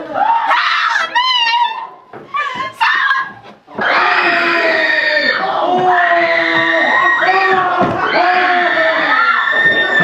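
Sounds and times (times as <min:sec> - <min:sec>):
people screaming: 0:00.0 - 0:10.0.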